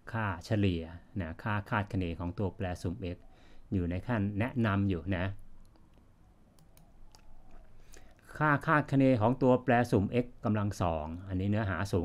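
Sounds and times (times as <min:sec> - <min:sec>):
person speaking: 0:00.0 - 0:06.0, 0:07.9 - 0:12.0
sharp clicks of computer control: 0:05.3 - 0:08.3.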